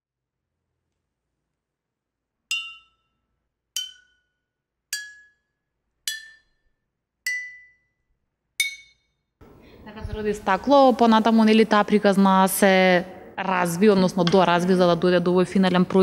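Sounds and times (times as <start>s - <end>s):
glass bottles struck with stick: 2.5s - 8.0s, 8.6s - 9.2s.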